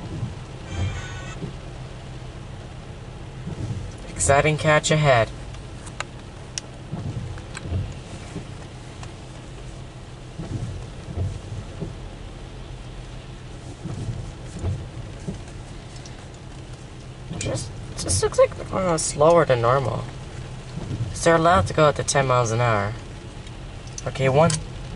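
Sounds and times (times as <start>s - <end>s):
low rumbles: 0.0s - 24.9s
rain pattering on car roof: 0.0s - 24.9s.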